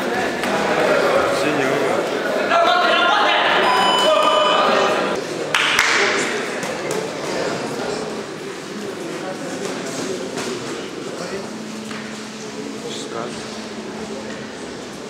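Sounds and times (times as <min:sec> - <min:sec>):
murmur of spectators' voices: 0:00.0 - 0:15.0
boxing ring bell ringing: 0:03.6 - 0:05.2.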